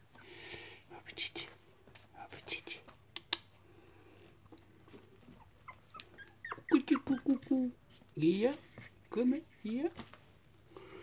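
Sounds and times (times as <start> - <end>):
puppy whimpering: 5.3 - 7.8.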